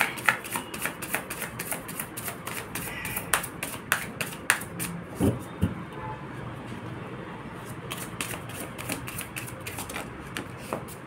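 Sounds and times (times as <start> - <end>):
cards being shuffled: 7.9 - 11.0.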